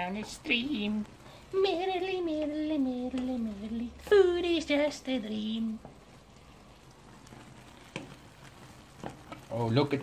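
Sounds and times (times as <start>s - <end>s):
sauce sizzling in a frying pan: 0.0s - 10.0s.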